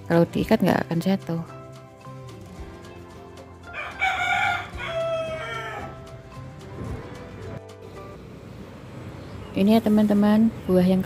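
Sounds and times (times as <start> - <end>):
rooster crowing: 3.6 - 6.2.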